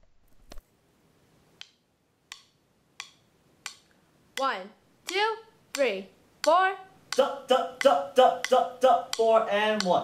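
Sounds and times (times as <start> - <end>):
faint metronome clicks: 1.6 - 4.5, 5.1 - 10.0.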